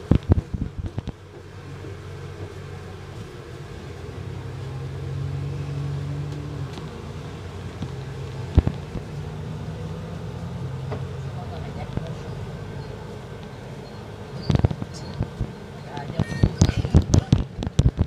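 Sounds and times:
bus engine drone: 0.0 - 18.0.

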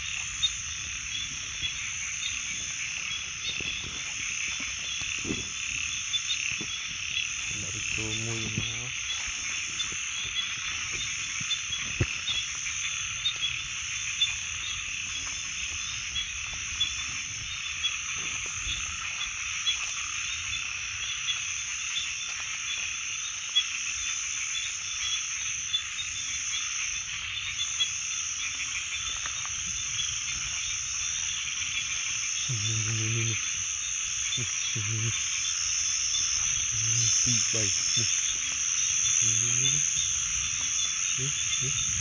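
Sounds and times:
frogs calling: 0.0 - 42.0.

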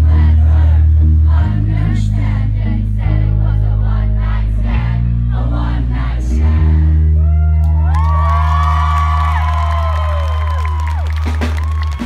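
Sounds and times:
crowd cheering: 7.2 - 12.0.

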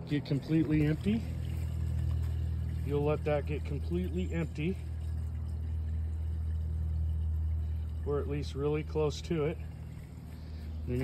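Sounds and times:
water draining through hose: 0.0 - 11.0.

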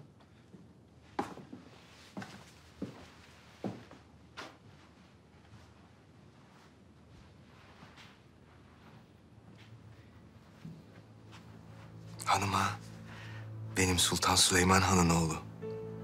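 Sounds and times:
faint footsteps: 0.2 - 13.2.

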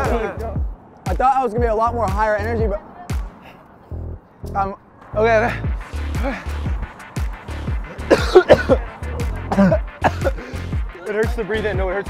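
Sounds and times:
background music with steady beat: 0.0 - 12.0
person coughing: 7.9 - 10.6.

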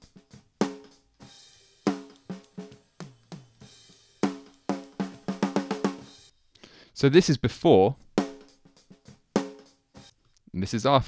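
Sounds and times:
cymbal and hi-hat bleed: 0.0 - 6.3.

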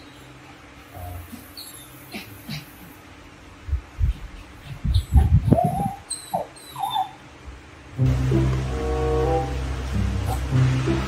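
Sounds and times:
baby monkey squeaky whimpers: 4.8 - 7.2
background music: 8.0 - 11.0.

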